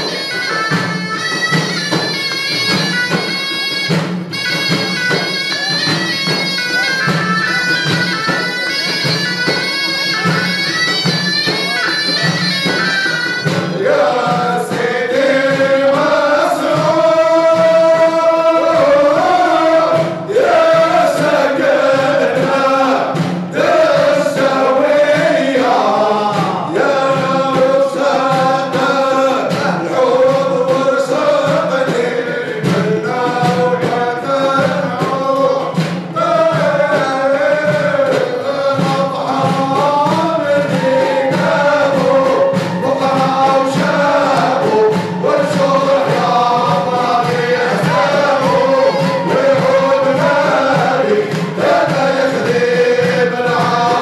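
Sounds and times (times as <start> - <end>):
frame drums beating: 0.0 - 54.0
men singing together: 12.3 - 54.0
men chanting in unison: 13.4 - 54.0.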